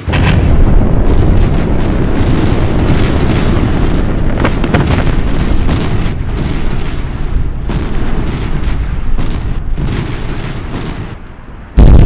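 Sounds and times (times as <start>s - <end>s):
loud explosion blast: 0.0s - 11.2s, 11.8s - 12.0s
deep rumble: 0.0s - 12.0s.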